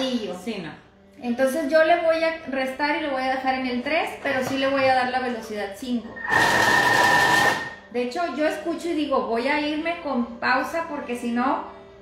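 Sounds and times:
food processor blade whining: 6.2s - 7.8s.

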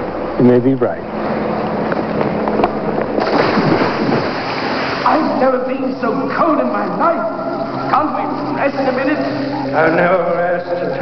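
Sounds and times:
water splashing and churning: 3.1s - 10.2s.

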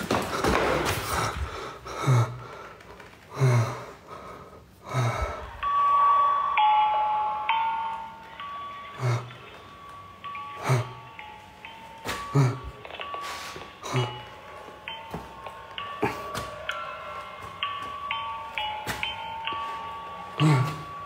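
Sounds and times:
steady chime-like tones: 5.3s - 21.0s.

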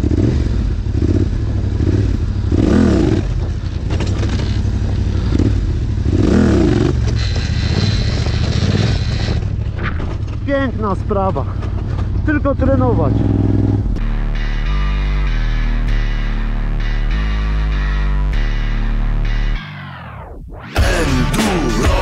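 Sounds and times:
quad engine revving: 0.0s - 9.7s, 11.0s - 14.0s.

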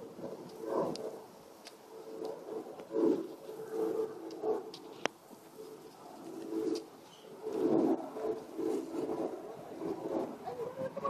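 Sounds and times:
doves cooing: 0.0s - 11.0s.

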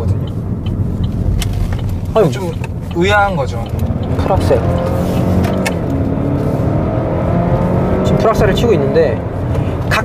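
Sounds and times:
car engine revving at full throttle: 0.0s - 10.0s.

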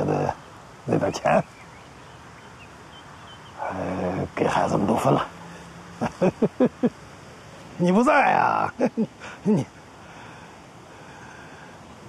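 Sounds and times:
old man speaking: 0.0s - 1.5s, 3.6s - 5.5s, 7.8s - 9.7s
low steady background: 0.0s - 12.0s
faint high chirps: 0.4s - 4.3s.

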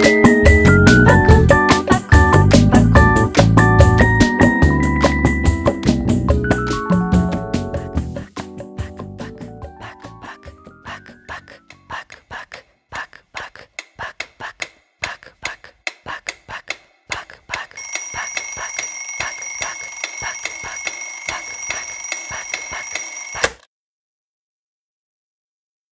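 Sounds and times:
bell alarm clock ringing: 17.8s - 23.6s.

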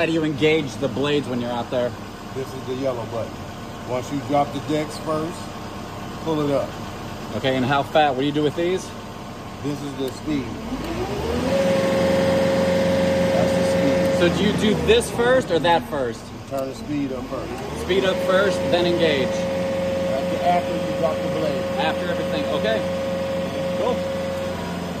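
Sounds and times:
mower engine revving with whine: 0.0s - 25.0s.

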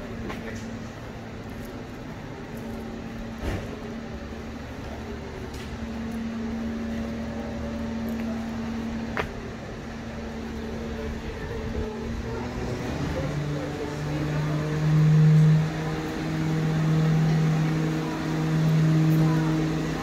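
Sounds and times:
mechanical hum: 0.0s - 20.0s.

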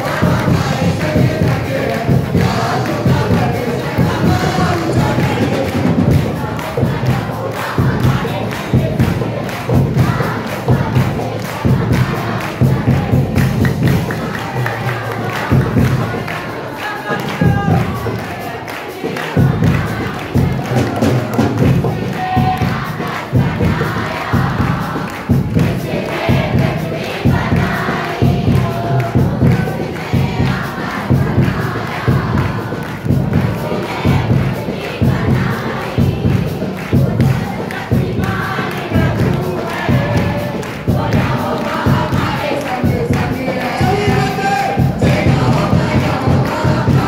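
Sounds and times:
congregation singing and shouting: 0.0s - 47.0s
rhythmic drum beats: 0.0s - 47.0s.

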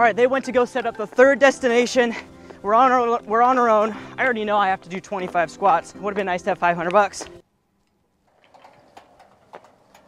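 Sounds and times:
metal gate latch rattling: 8.3s - 10.0s.

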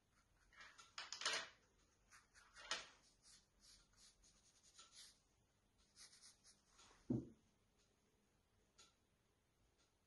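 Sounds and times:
paintbrush scratching on paper: 1.9s - 7.0s.

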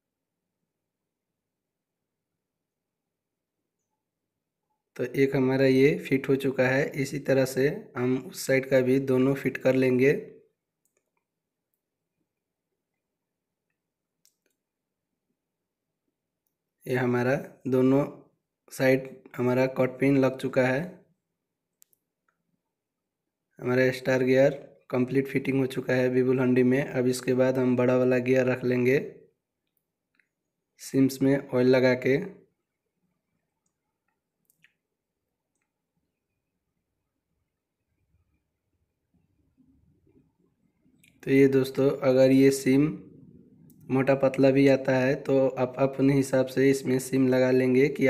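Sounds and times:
man speaking: 5.0s - 10.3s, 16.8s - 21.0s, 23.6s - 29.1s, 30.8s - 32.4s, 41.2s - 43.2s, 43.8s - 48.0s.

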